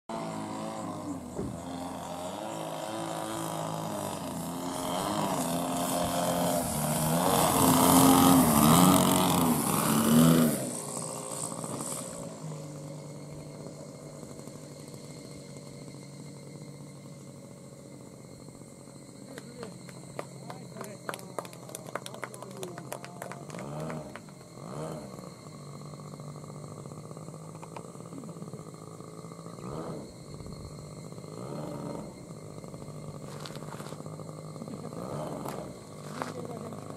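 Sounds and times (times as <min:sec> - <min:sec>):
model airplane engine: 0:00.1 - 0:36.9.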